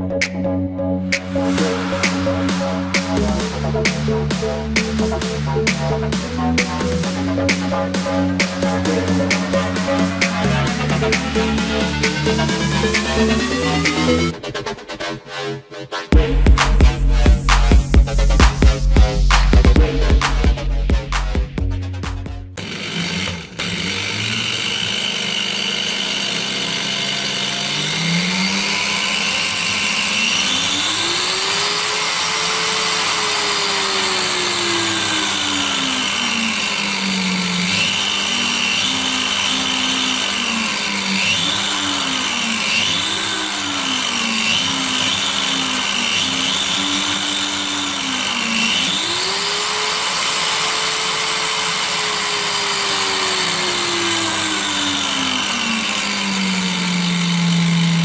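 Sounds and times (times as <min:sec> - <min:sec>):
angle grinder motor changing speed: 0:00.0 - 0:15.5, 0:16.1 - 0:58.0.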